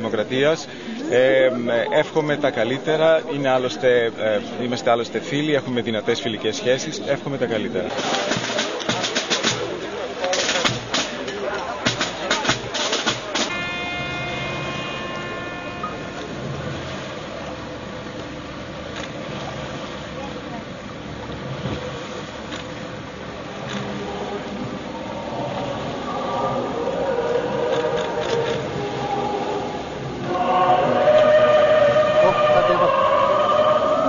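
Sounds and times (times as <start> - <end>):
boat engine rumbling: 0.0 - 34.0
voices chanting a hymn: 12.3 - 17.7, 24.0 - 34.0.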